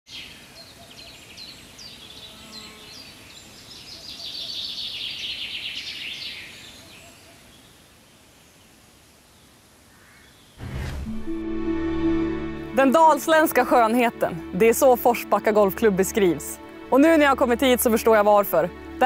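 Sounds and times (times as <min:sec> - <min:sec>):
songbird singing: 0:00.1 - 0:10.6
faint outdoor ambience: 0:00.1 - 0:19.0.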